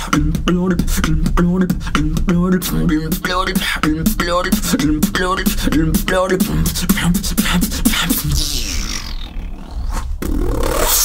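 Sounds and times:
person beatboxing: 0:00.0 - 0:09.6
low bass drone: 0:00.0 - 0:11.0
vocal sound sliding down in pitch: 0:00.0 - 0:11.0.

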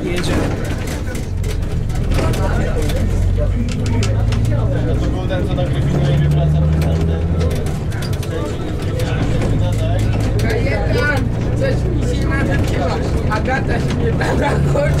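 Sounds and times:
bus body rattling and knocking: 0:00.0 - 0:15.0
bus diesel engine droning: 0:00.0 - 0:15.0.

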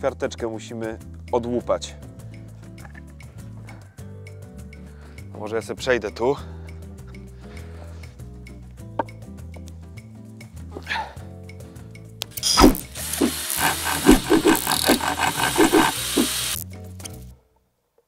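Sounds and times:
background music: 0:00.0 - 0:17.6
knife scraping wood: 0:12.5 - 0:16.6.

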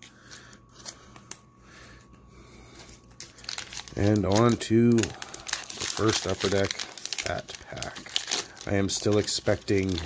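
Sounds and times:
foil wrapper crinkling: 0:02.6 - 0:10.0.

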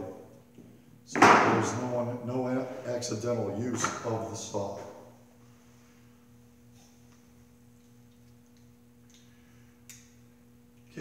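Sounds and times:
faint two-tone electrical hum: 0:00.0 - 0:11.0.

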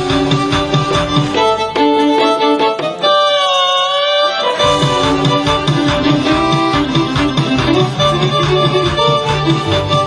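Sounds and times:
electronic organ playing: 0:04.5 - 0:10.0.

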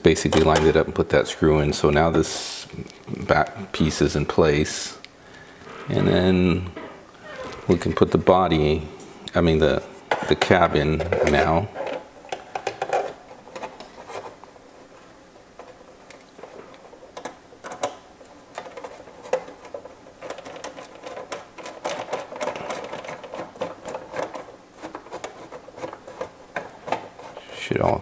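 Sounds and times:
plastic parts clicking and tapping: 0:10.1 - 0:14.3, 0:15.6 - 0:28.0.

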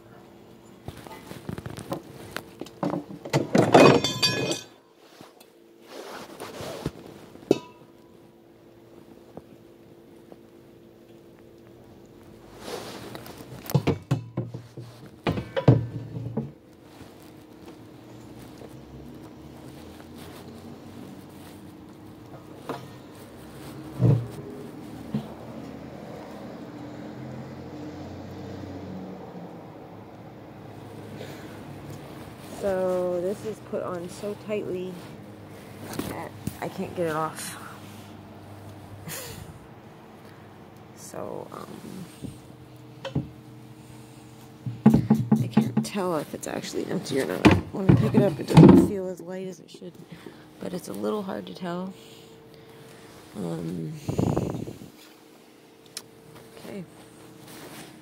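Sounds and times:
steady low hum: 0:00.0 - 0:27.9, 0:29.4 - 0:58.0
ringing metallic clink: 0:03.8 - 0:04.8
knocks and clunks on metal tank: 0:13.7 - 0:16.6, 0:44.7 - 0:46.0, 0:47.4 - 0:49.0.

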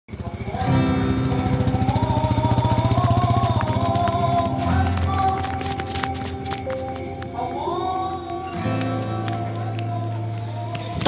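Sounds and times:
slow film music melody: 0:00.1 - 0:11.0.

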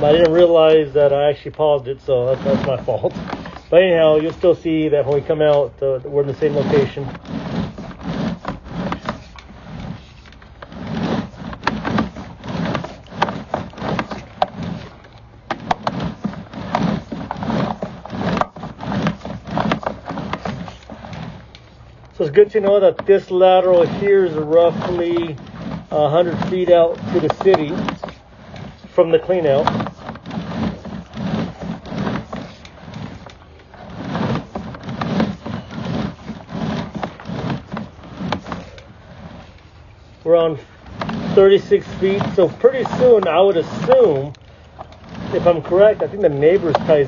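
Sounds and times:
cable rubbing and scraping: 0:00.0 - 0:47.0.

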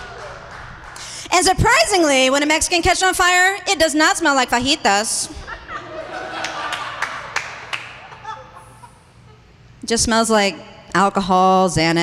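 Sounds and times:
audience laughing: 0:05.3 - 0:09.5
sharp hand claps: 0:06.4 - 0:08.2.

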